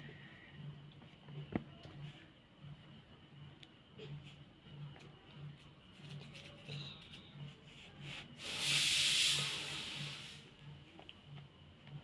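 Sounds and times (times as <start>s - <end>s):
hissing rush of noise: 8.4s - 10.6s.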